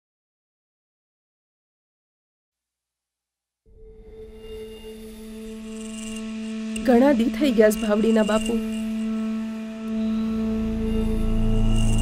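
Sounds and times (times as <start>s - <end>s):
musical drone of held tones: 3.7s - 12.0s.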